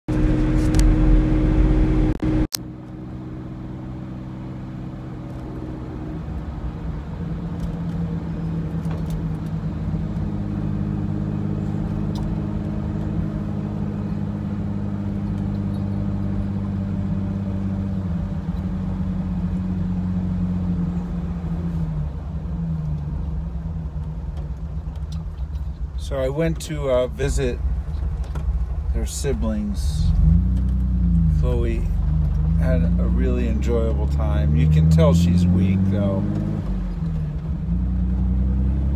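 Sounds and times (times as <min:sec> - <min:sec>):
car engine running: 0:00.1 - 0:38.9
road and wind noise: 0:00.1 - 0:38.9.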